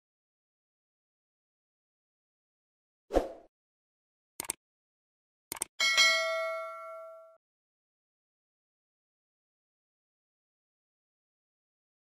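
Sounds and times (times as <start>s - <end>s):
notification bell ding: 5.8s - 7.4s.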